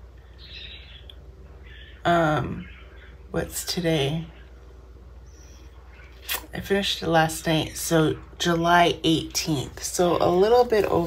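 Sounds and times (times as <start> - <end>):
low steady hum: 0.0 - 11.0
bird chirping: 0.2 - 3.3.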